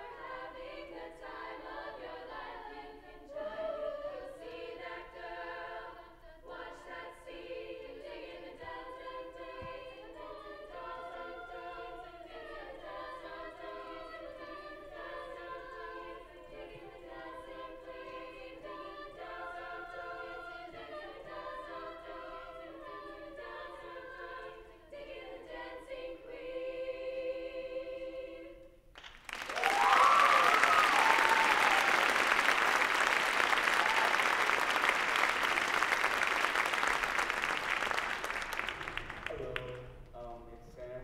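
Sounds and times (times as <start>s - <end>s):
girls' choir singing: 0.0s - 28.8s, 29.5s - 38.9s
audience applause: 29.0s - 39.9s
high cheers: 29.3s - 36.7s.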